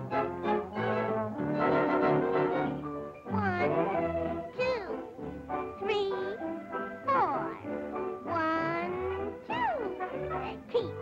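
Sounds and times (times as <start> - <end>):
cartoon orchestra with brass: 0.0 - 5.6, 6.6 - 11.0.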